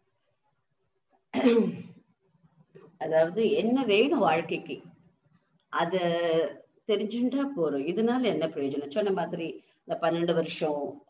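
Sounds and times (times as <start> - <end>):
person clearing throat: 1.4 - 1.9.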